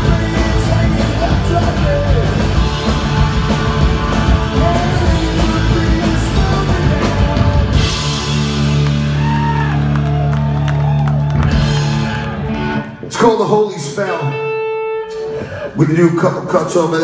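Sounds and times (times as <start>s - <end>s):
punk rock band chord: 0.0s - 10.0s.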